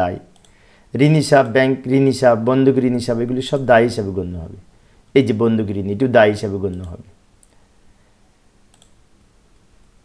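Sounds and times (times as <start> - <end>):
low room hiss: 0.0 - 10.0
computer mouse clicks: 0.3 - 0.6, 8.7 - 9.0.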